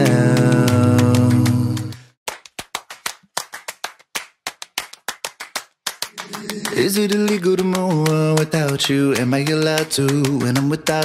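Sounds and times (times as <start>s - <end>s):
rhythmic hand claps: 0.0s - 11.0s.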